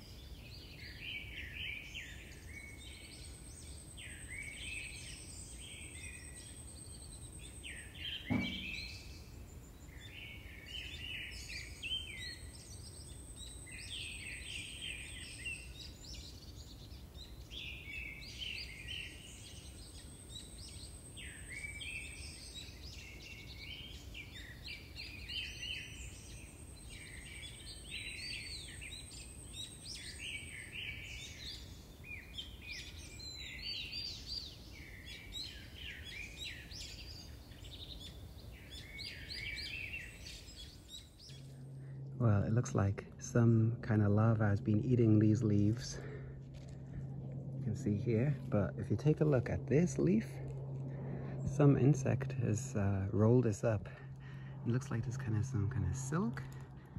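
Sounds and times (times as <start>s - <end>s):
wild birds chirping: 0.0s - 56.9s
low background rumble: 12.1s - 56.9s.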